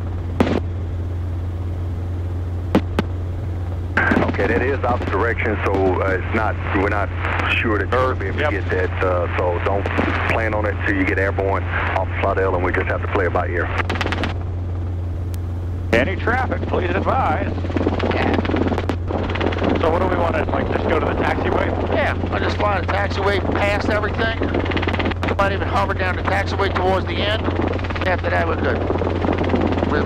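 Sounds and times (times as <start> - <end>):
helicopter engine and rotors drone: 0.0 - 30.0.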